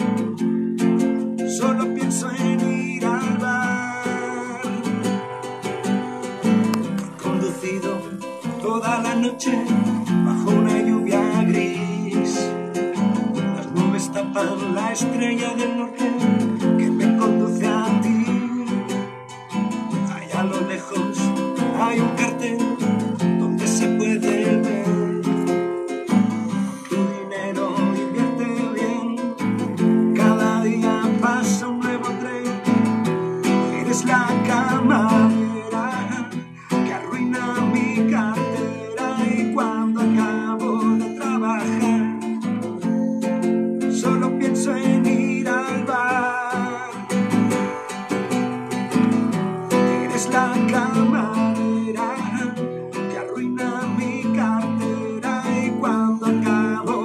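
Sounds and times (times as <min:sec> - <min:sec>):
acoustic guitar strummed and picked: 0:00.0 - 0:57.0
man singing: 0:00.0 - 0:57.0.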